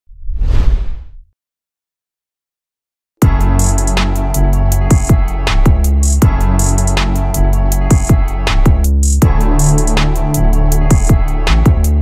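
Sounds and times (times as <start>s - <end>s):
whoosh sound effect: 0.1s - 1.2s.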